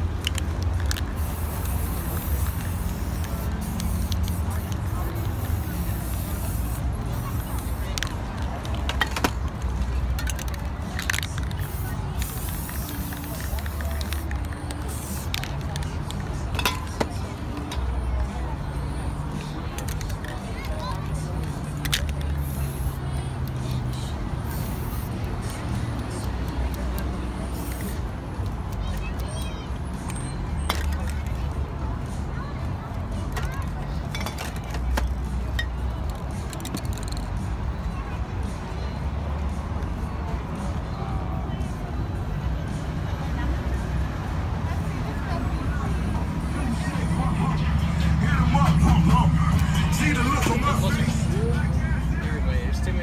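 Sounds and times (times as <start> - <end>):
faint background voices: 0.0 - 53.0
low street rumble: 0.0 - 53.0
spray-paint can hissing: 0.1 - 16.8, 19.4 - 28.8, 36.0 - 37.2
paint cans clinking: 16.5 - 17.1.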